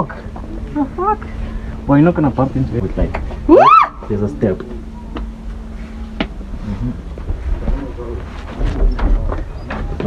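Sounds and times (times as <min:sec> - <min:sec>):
microphone handling rumble: 0:04.6 - 0:10.0.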